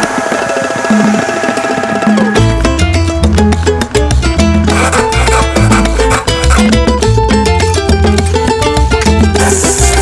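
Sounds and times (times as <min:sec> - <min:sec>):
salsa percussion break: 0:00.0 - 0:10.0.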